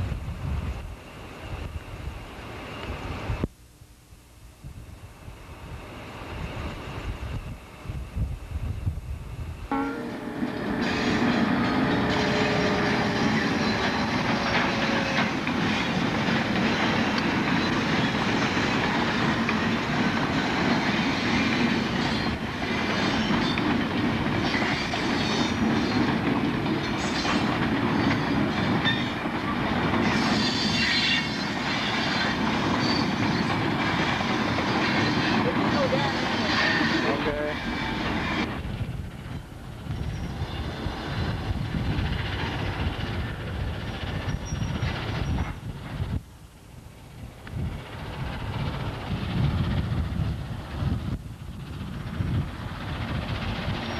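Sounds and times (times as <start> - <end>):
train wheels clacking over rail joints: 10.2 - 38.4
wheel squeal: 30.1 - 33.6, 39.9 - 40.8, 44.1 - 45.6.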